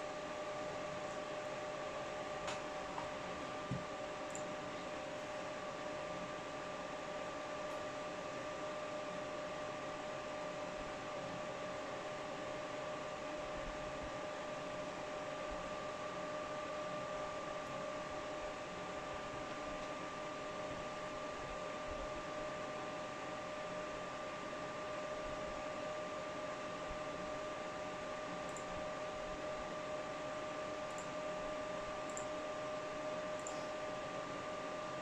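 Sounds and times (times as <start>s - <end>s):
steady fan whine: 0.0s - 35.0s
faint click: 33.4s - 33.7s.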